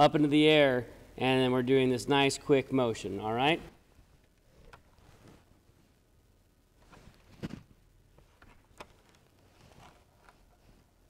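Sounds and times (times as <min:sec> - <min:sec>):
soft handling knocks and clicks: 0:06.8 - 0:10.9.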